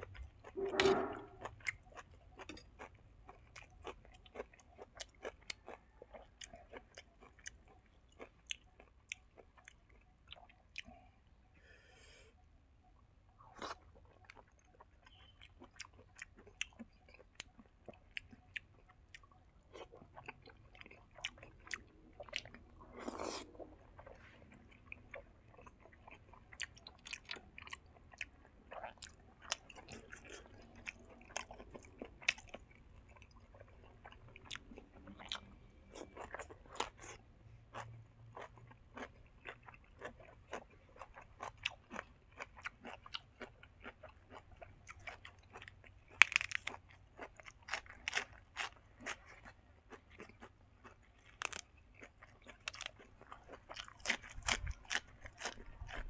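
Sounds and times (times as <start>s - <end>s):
man chewing food: 0.0s - 56.0s.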